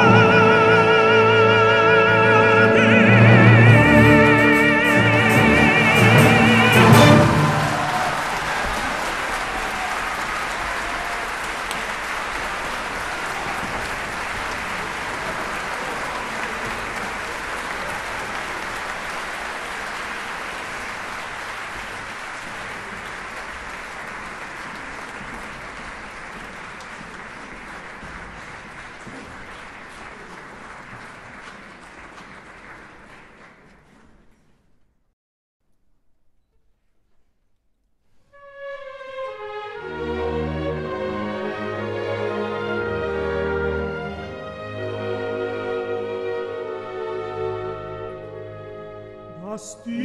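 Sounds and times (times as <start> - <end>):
audience applause: 5.4 - 34.6.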